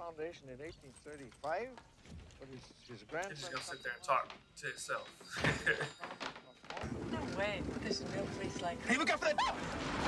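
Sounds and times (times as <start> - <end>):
shop door bell dinging: 3.4 - 7.3.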